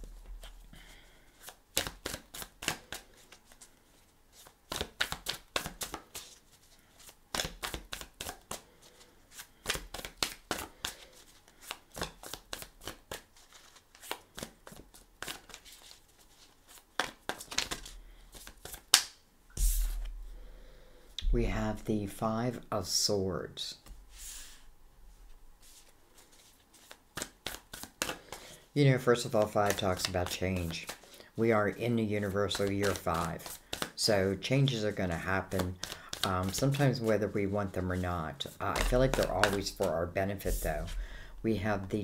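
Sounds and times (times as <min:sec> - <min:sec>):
cards being shuffled: 0:00.0 - 0:00.6, 0:01.4 - 0:20.2, 0:25.6 - 0:28.5, 0:29.2 - 0:31.1, 0:32.1 - 0:34.1, 0:34.7 - 0:41.0
snap of cards: 0:18.6 - 0:19.2.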